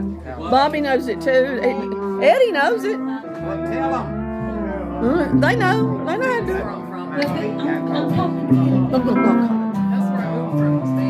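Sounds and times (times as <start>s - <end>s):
bass notes: 0.0s - 11.0s
live band held notes: 0.0s - 11.0s.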